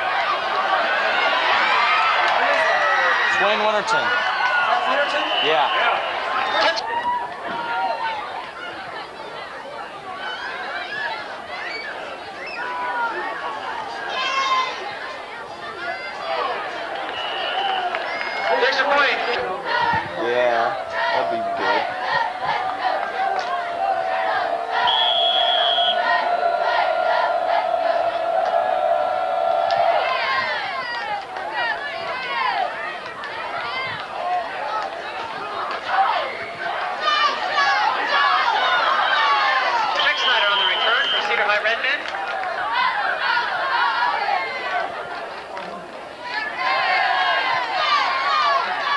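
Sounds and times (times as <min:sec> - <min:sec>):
spectators cheering and yelling: 0:00.0 - 0:48.9
long held shout: 0:15.9 - 0:32.8.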